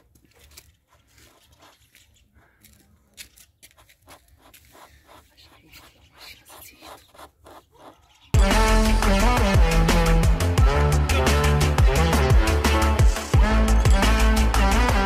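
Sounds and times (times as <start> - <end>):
pen tip scraping car paint: 0.4 - 2.2, 3.2 - 8.0.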